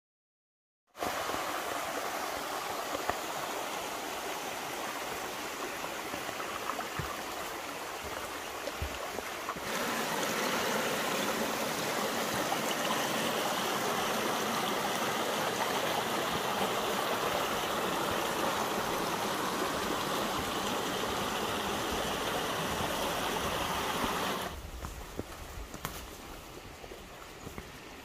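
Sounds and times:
stream flowing over rocks: 0:01.0 - 0:25.5.

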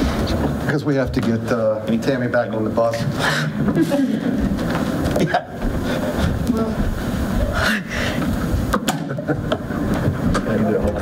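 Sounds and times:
people moving about: 0:00.0 - 0:11.0.

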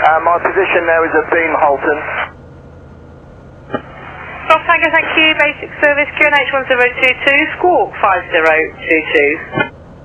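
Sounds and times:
radio transmission: 0:00.0 - 0:02.4, 0:03.7 - 0:09.7
muffled aircraft engine drone: 0:00.0 - 0:10.0.

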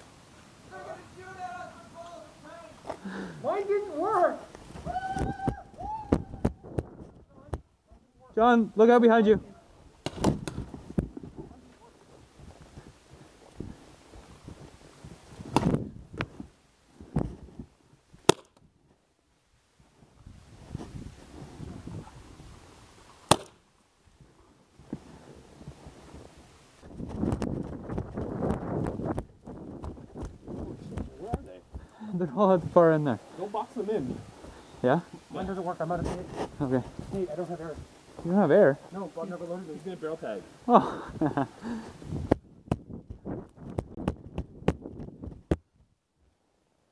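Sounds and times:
paintball pistol shots: 0:18.2 - 0:18.6, 0:23.3 - 0:23.6.

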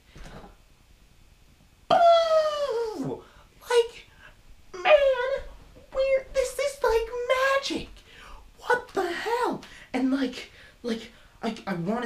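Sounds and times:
young man yelling: 0:04.8 - 0:07.8.

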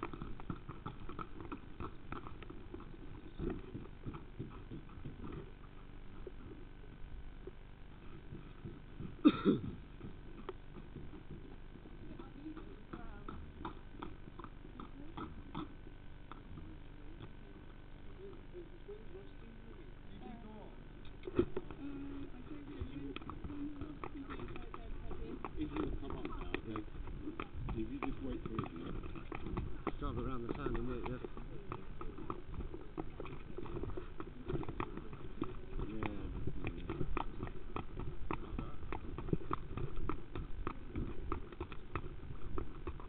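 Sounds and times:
horse hooves clopping: 0:00.0 - 0:43.0
muffled voices: 0:16.6 - 0:29.0.

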